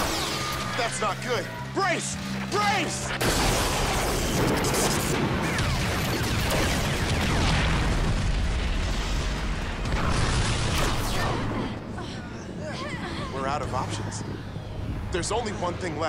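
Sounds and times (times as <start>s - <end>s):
explosions rumbling: 3.2s - 11.9s.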